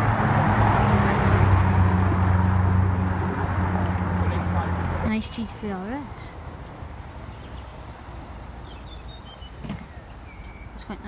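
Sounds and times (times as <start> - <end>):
tyre and road noise: 0.0 - 11.0.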